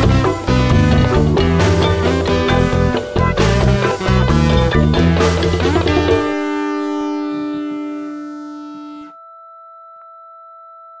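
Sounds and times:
band chord: 0.0s - 8.2s
steady pure tone: 1.0s - 11.0s.

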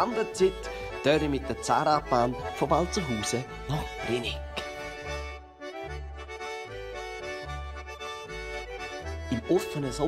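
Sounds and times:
accordion playing folk tune: 0.0s - 10.0s.

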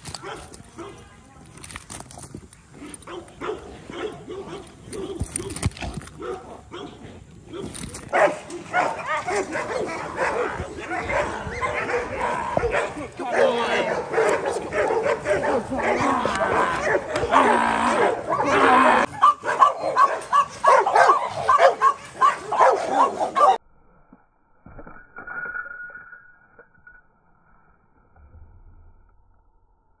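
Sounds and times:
dog barking and growling: 2.8s - 23.6s
person's voice: 10.7s - 19.1s.

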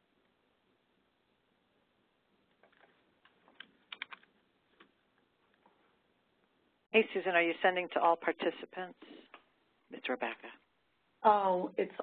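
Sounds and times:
computer keyboard typing: 2.6s - 4.9s.

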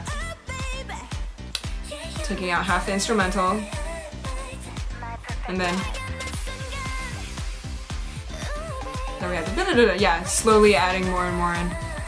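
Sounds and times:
dance-pop song: 0.0s - 12.0s
person singing: 0.0s - 12.0s
steady drum beat: 0.0s - 12.0s.

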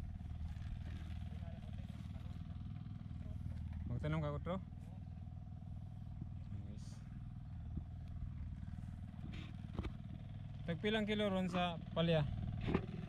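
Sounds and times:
small engine running: 0.0s - 13.0s.

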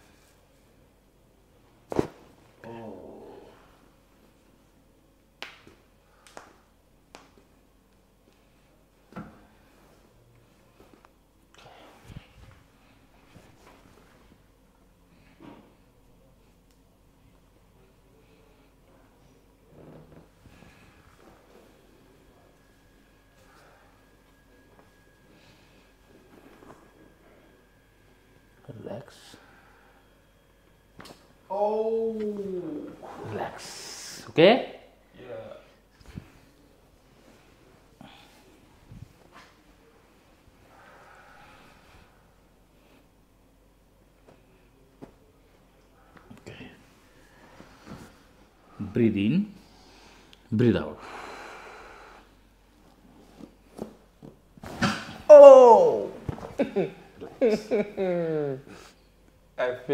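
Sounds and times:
faint high hum: 0.0s - 59.9s.

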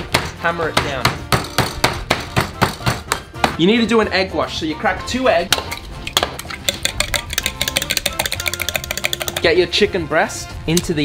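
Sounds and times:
rolling pin pounding meat: 0.0s - 3.6s, 5.5s - 9.6s.

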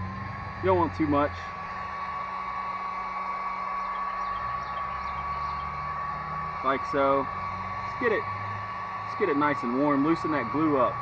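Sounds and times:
heat gun fan whining: 0.0s - 11.0s.

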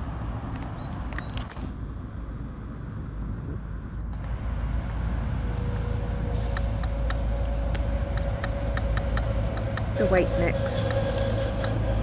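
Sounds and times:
low outdoor rumble: 0.0s - 12.0s
faint steady hum: 1.1s - 6.0s.

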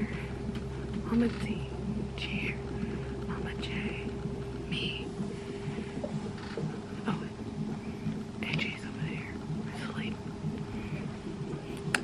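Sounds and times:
steady low hum: 0.0s - 12.0s
woman whispering: 1.0s - 2.7s, 3.3s - 5.1s, 7.0s - 7.4s, 8.4s - 10.2s.

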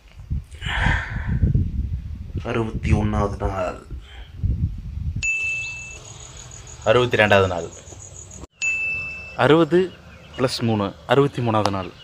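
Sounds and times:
steady high ringing tone: 5.2s - 10.0s.

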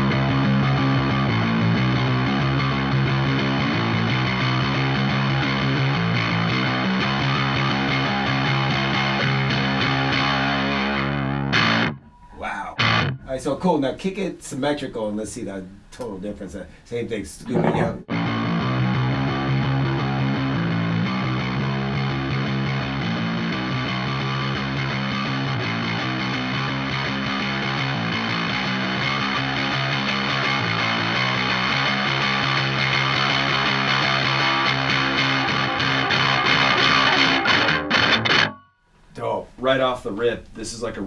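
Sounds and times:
distorted electric bass: 0.0s - 12.1s, 17.8s - 38.6s.

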